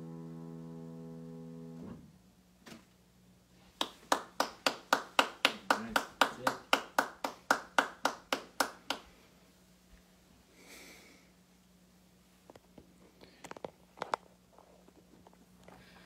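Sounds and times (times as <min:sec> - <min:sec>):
person clapping: 0:03.8 - 0:09.2.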